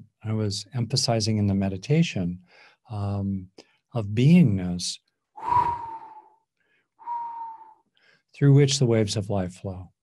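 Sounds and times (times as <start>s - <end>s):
man breathing in: 2.5s - 2.9s, 5.4s - 8.3s
faint whistling tone: 5.4s - 7.9s.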